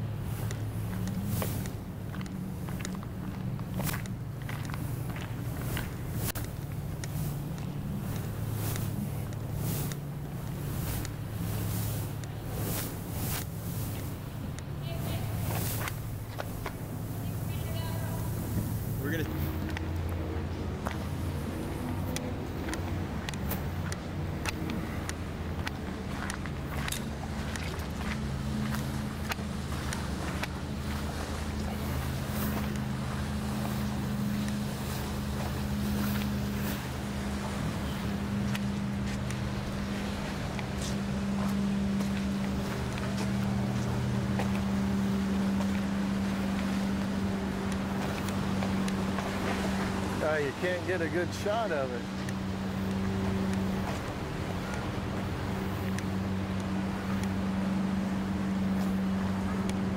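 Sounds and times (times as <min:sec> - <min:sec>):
motorboat engine drone: 0:00.0 - 0:59.9.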